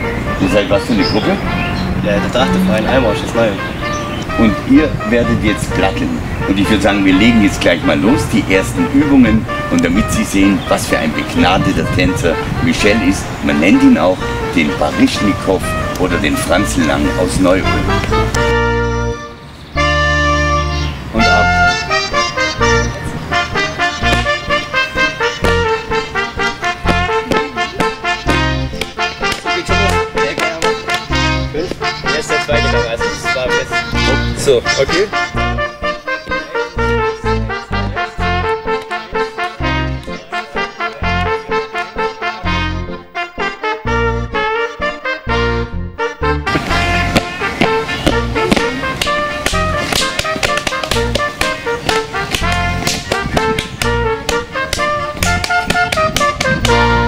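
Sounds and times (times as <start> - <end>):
accordion folk dance music: 0.0 - 57.0
hand slaps on thighs and shoes: 24.0 - 24.3, 26.8 - 31.8, 47.1 - 56.8.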